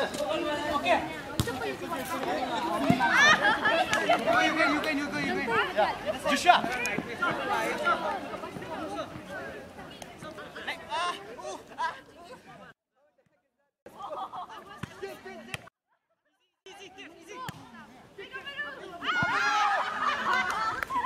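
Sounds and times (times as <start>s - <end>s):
young people chattering: 0.0s - 12.8s, 14.0s - 15.5s, 16.7s - 21.0s
people laughing: 2.4s - 4.6s, 13.9s - 14.8s, 19.4s - 21.0s.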